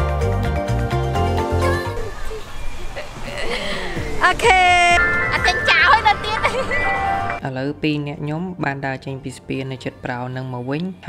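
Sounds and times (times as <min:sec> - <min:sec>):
person speaking: 0:03.0 - 0:06.9
ice cream van jingle: 0:04.2 - 0:07.4.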